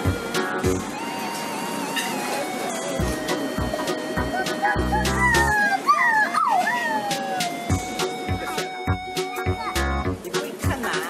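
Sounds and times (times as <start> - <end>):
background music with a beat: 0.0 - 1.0, 3.0 - 5.6, 7.1 - 11.0
small dog whining: 4.4 - 7.8.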